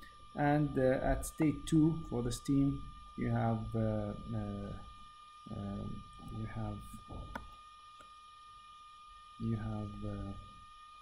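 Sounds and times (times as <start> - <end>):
faint high-pitched electrical whine: 0.0 - 11.0.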